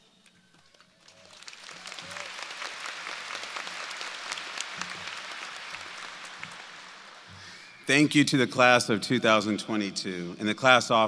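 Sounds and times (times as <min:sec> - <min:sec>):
audience applauding: 0:00.6 - 0:08.0.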